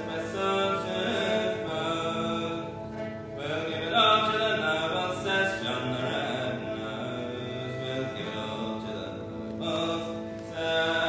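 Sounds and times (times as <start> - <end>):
accordion: 0.0 - 11.0
bowed cello: 0.0 - 11.0.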